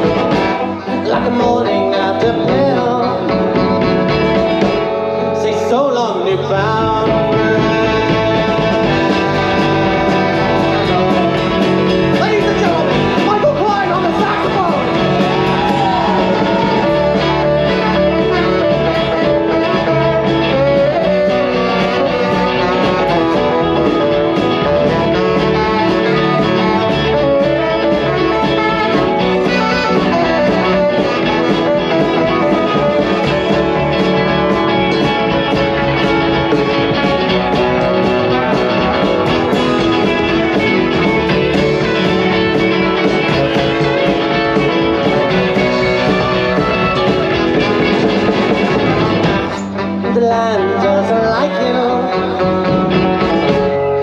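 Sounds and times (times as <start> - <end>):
bass: 0.0 - 54.0
drums: 0.0 - 54.0
electric guitars: 0.0 - 54.0.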